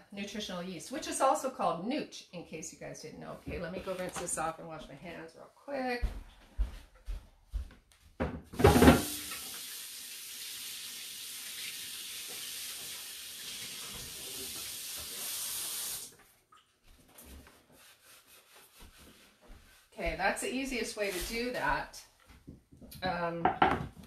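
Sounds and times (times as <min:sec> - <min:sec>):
tap running water into sink: 0:08.6 - 0:16.1.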